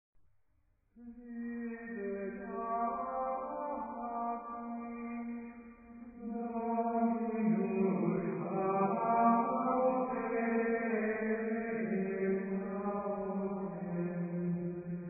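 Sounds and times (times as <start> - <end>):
slow chanted singing: 1.0 - 15.0.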